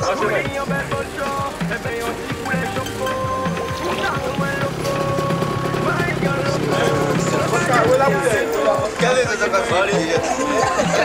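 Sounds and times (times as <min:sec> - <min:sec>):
held synth notes: 0:00.0 - 0:11.0
wavering voices: 0:00.0 - 0:11.0.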